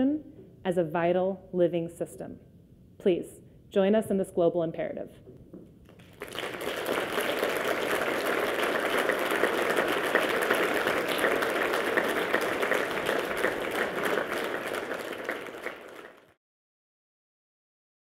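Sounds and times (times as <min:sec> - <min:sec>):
audience applauding: 0:05.9 - 0:16.4.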